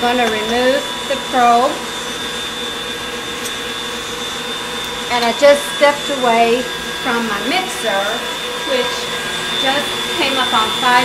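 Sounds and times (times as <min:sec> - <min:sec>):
electric mixer whine: 0:00.0 - 0:11.0.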